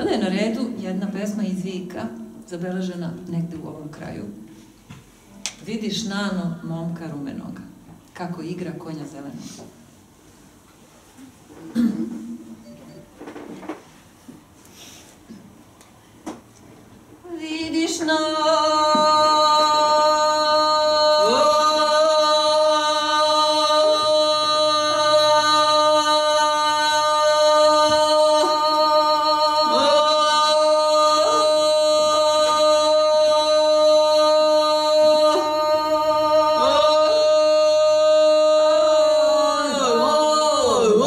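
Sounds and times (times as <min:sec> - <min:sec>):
woman singing long note: 0:17.2 - 0:41.0.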